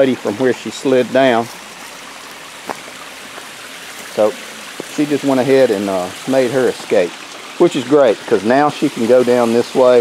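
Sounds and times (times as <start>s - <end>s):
water pouring from pipe: 0.0s - 10.0s.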